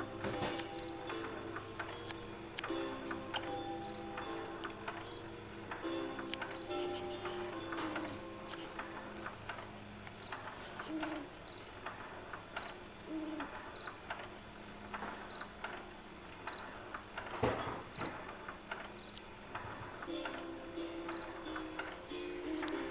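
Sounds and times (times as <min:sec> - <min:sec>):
soft low melody notes: 0:00.0 - 0:11.4, 0:20.1 - 0:22.9
recorded cricket chirps: 0:00.0 - 0:22.9
swing seat ticking: 0:00.0 - 0:22.9.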